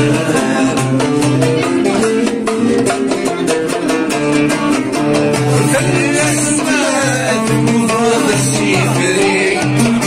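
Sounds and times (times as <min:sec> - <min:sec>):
plucked string ensemble: 0:00.0 - 0:10.0.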